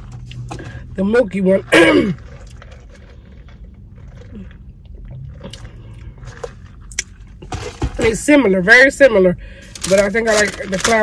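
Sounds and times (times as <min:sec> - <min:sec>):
low steady hum: 0:00.0 - 0:11.0
swallowing and chewing: 0:02.0 - 0:07.2.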